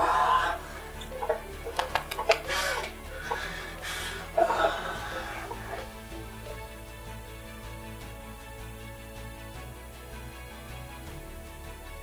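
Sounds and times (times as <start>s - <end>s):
men sobbing: 0.0s - 6.6s
background music: 0.0s - 12.0s.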